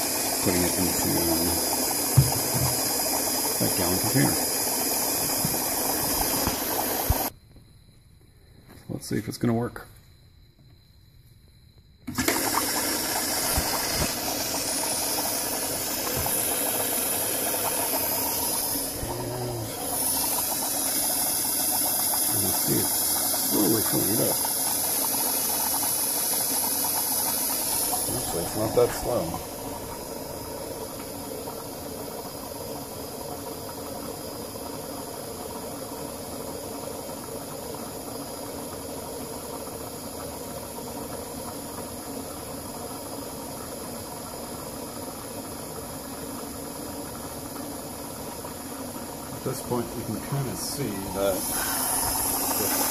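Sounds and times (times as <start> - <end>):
bubbling in a bucket: 0.0 - 7.3, 12.1 - 52.9
electric fuel pump running: 0.0 - 7.3, 12.0 - 52.9
liquid pouring into a jug: 0.0 - 7.3, 12.1 - 52.9
liquid rushing through hoses: 12.1 - 32.3, 49.3 - 52.9.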